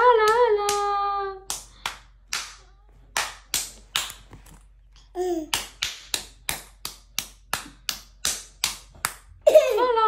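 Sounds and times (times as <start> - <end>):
baby clapping hands: 5.2 - 9.3.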